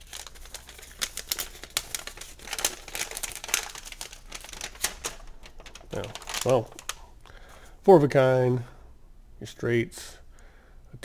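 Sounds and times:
paper crinkling and rustling: 0:00.0 - 0:07.1.

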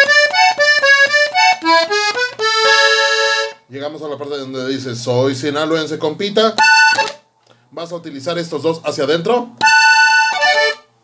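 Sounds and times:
button accordion playing short notes: 0:00.0 - 0:03.6, 0:06.6 - 0:07.2, 0:09.6 - 0:10.9.

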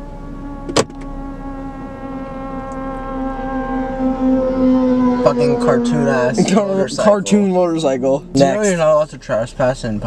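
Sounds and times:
motorcycle engine buzzy drone: 0:00.0 - 0:10.0.

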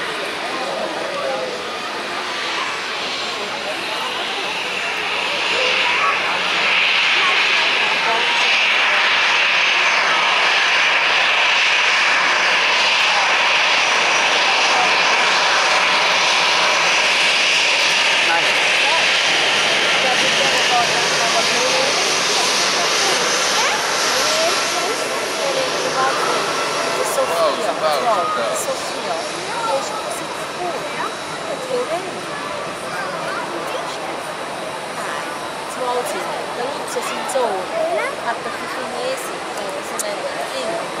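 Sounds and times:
jet engines running: 0:00.0 - 0:41.0.

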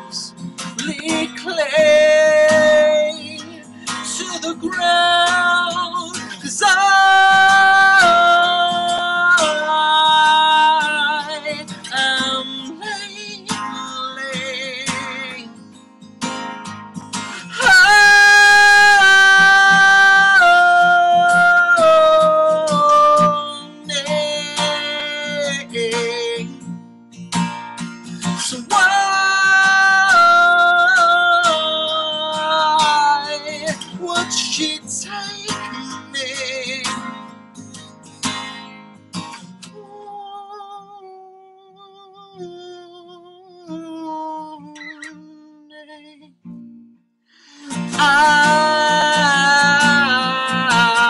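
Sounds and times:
man singing: 0:00.0 - 0:15.6, 0:17.2 - 0:26.6, 0:28.1 - 0:37.3, 0:39.6 - 0:46.4, 0:47.5 - 0:51.0
strummed acoustic guitar: 0:00.0 - 0:51.0.

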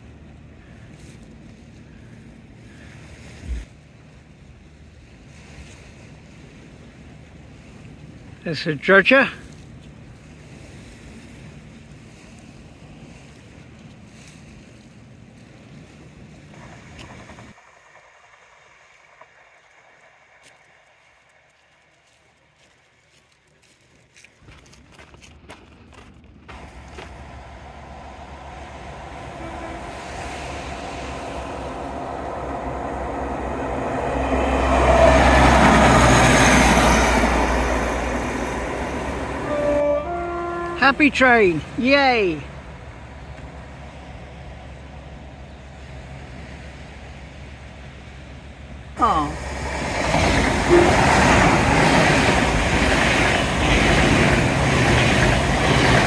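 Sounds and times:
diesel train passing: 0:00.0 - 0:23.7, 0:25.9 - 0:56.0
train horn toot: 0:26.5 - 0:41.8, 0:49.3 - 0:52.2.

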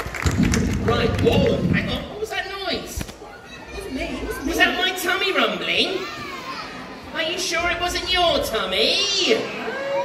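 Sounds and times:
children calling out: 0:05.7 - 0:07.0.

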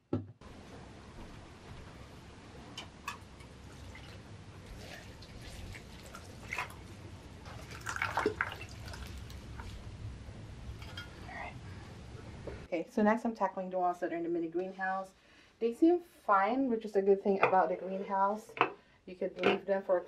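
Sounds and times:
water pouring onto soil: 0:07.5 - 0:09.8.

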